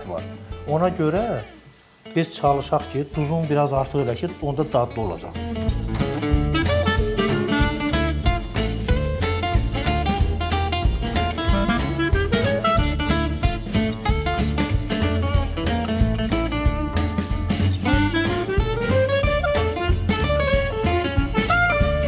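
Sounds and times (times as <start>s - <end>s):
music with beat and bass: 5.0s - 22.0s.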